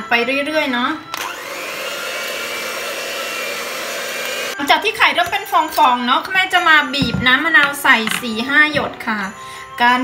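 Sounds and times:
electric mixer whisking: 0:01.2 - 0:04.6.

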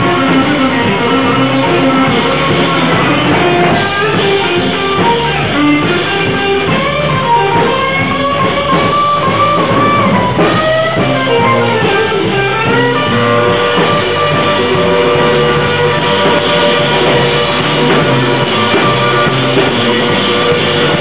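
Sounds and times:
bass line: 0:00.0 - 0:21.0
drums: 0:00.0 - 0:21.0
electric guitar bending notes: 0:00.0 - 0:21.0.

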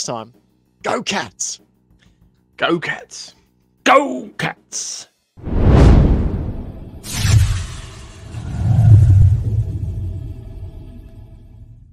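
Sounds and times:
low rumbling boom: 0:05.5 - 0:07.6.

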